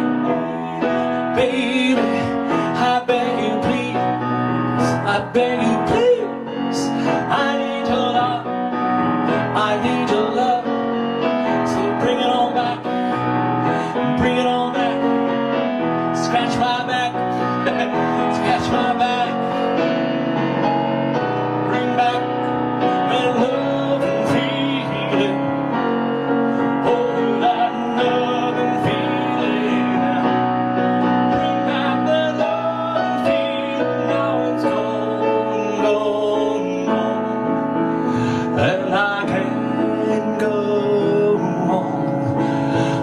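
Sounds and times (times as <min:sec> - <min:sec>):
man singing: 0:00.0 - 0:20.2, 0:21.1 - 0:43.0
piano accompaniment: 0:00.0 - 0:43.0.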